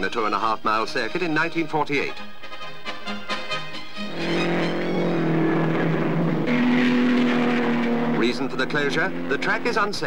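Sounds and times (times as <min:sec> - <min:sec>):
racing car engines running hard: 0:04.1 - 0:10.0.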